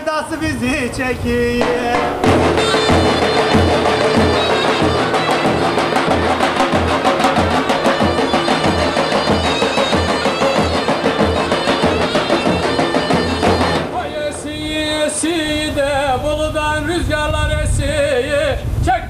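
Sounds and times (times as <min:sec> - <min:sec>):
deep bass drum booms: 0:01.6 - 0:05.2
shrill reed pipe playing tune: 0:01.6 - 0:15.2.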